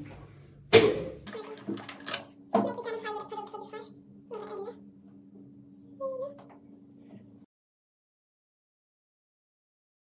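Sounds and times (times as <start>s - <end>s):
high-pitched vocal sounds: 2.6s - 4.8s, 5.8s - 6.5s.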